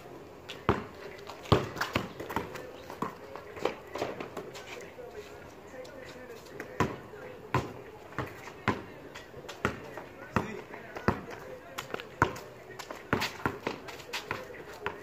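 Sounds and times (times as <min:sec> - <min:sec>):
basketball bouncing on concrete: 0:00.5 - 0:04.6, 0:06.5 - 0:15.0.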